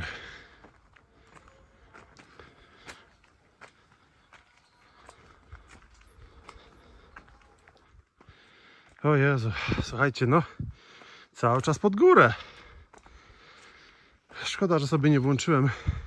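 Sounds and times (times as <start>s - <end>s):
footsteps on concrete slabs: 0.0s - 16.0s.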